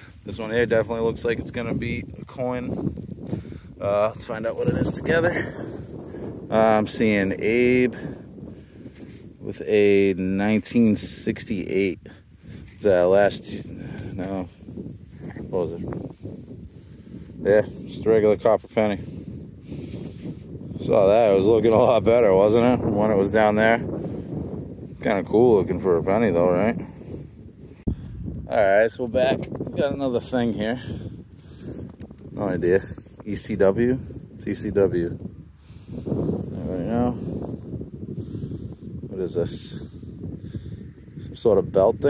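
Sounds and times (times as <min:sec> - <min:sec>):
wind buffeting microphone: 0:00.0 - 0:42.0
man's voice: 0:03.8 - 0:05.6.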